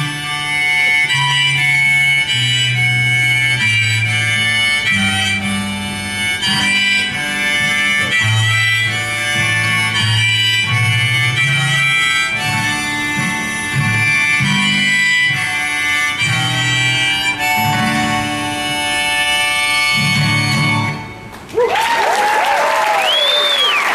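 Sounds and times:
strummed acoustic guitar: 0.0s - 21.3s
harmonica: 0.0s - 21.4s
audience applause: 21.3s - 23.9s.

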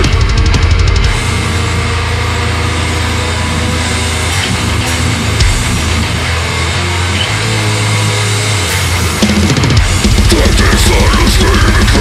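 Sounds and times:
distorted guitars: 0.0s - 12.0s
drums: 0.0s - 12.0s.

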